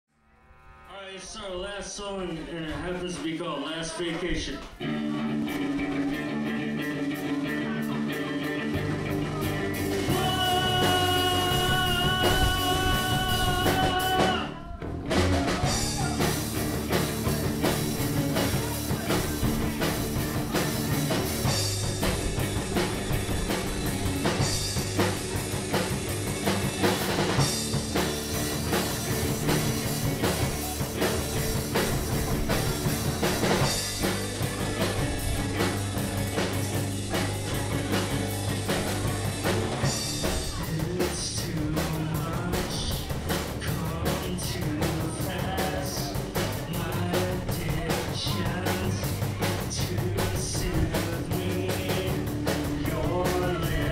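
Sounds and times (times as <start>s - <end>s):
rock band playing: 0.6s - 53.9s.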